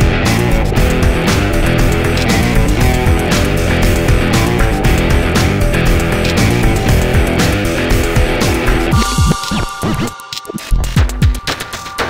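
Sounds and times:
steady held tone: 0:00.7 - 0:12.0.

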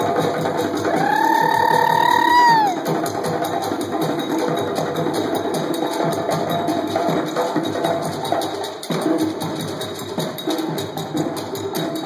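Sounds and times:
djembe drums playing: 0:00.0 - 0:12.0.

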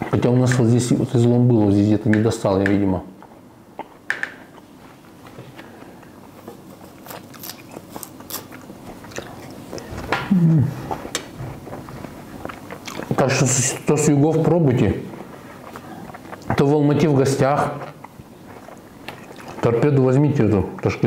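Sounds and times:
man chewing crunchy melon: 0:05.8 - 0:13.4, 0:15.1 - 0:16.6, 0:17.8 - 0:19.7
man humming: 0:10.2 - 0:11.0.

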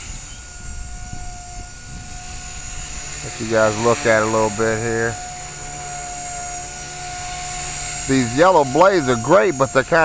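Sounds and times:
rc helicopter high whine: 0:00.0 - 0:10.0.

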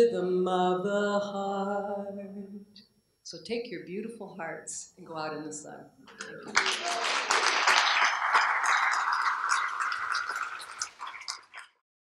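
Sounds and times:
audience clapping: 0:06.2 - 0:11.8.

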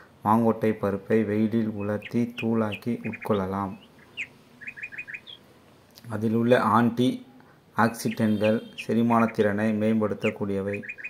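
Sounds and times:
small bird chirping: 0:01.6 - 0:05.5, 0:10.2 - 0:11.0.

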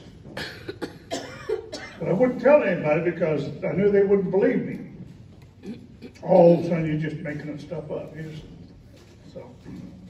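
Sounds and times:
man coughing into microphone: 0:00.3 - 0:02.4, 0:05.6 - 0:07.0.

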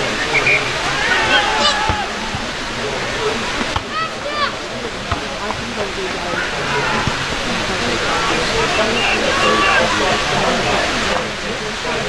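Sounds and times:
distant players shouting: 0:00.0 - 0:11.2
rain hissing: 0:00.0 - 0:12.0.

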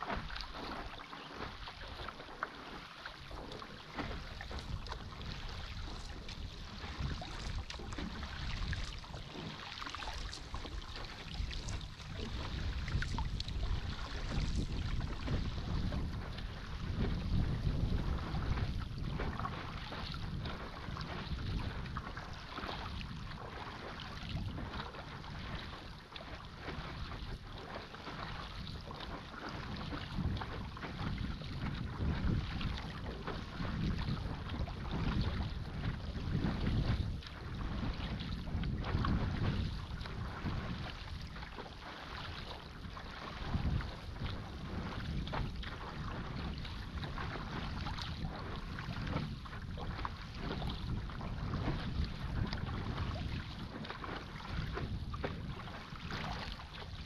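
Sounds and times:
water splashing around paddleboard: 0:00.0 - 0:57.0
wind rumbling on microphone: 0:00.0 - 0:57.0.

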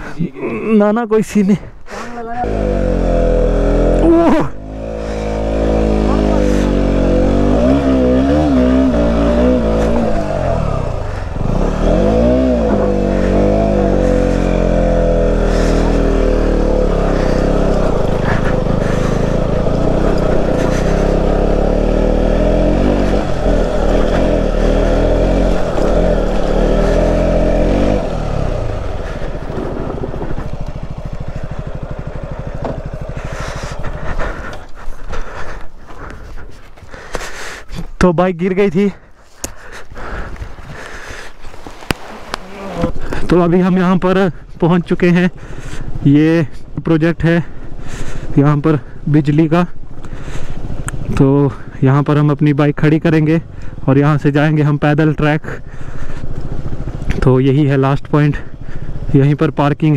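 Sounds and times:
motorcycle engine revving: 0:02.3 - 0:37.6, 0:39.6 - 0:59.9.

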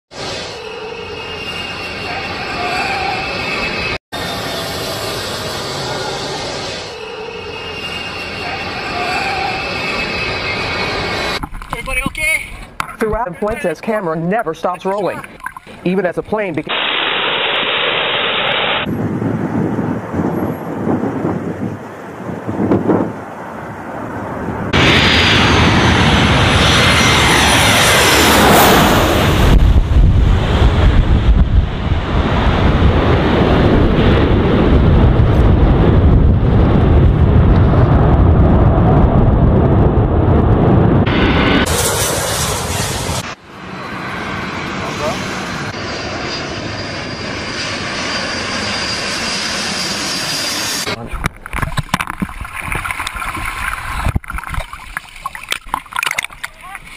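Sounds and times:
jet engine whine: 0:00.1 - 0:12.0, 0:14.5 - 0:54.4
jet engines roaring: 0:00.1 - 0:56.9.

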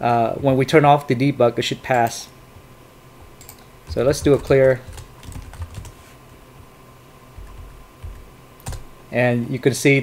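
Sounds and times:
typing on computer keyboard: 0:03.4 - 0:06.0, 0:07.4 - 0:08.8.

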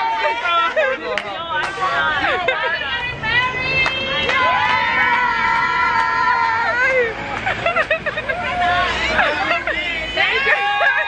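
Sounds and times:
low street rumble: 0:00.0 - 0:11.0
women talking excitedly: 0:00.0 - 0:11.0.

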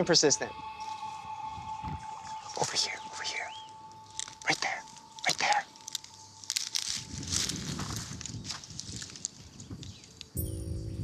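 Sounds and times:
sustained music chord: 0:00.0 - 0:07.6, 0:10.4 - 0:11.0
dry brush and twigs crackling: 0:00.6 - 0:10.4
low rumble: 0:10.4 - 0:11.0.

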